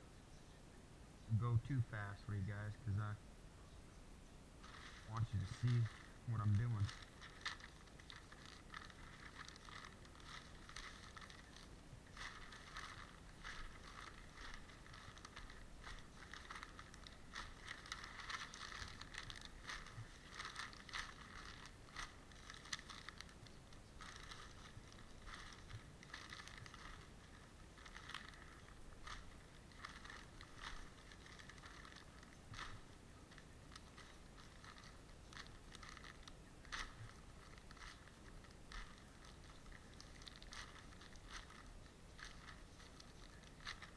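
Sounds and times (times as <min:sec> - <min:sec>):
newspaper rustling and crinkling: 0:04.6 - 0:43.9.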